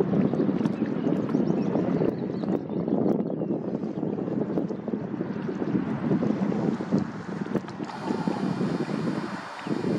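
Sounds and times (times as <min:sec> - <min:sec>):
wind buffeting microphone: 0:00.0 - 0:09.9.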